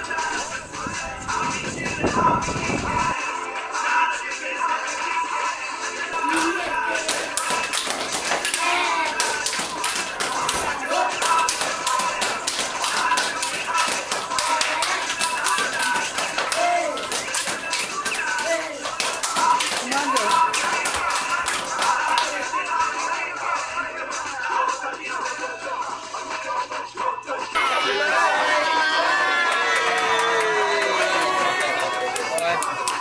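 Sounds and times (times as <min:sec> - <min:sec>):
voices calling: 0:06.2 - 0:22.5.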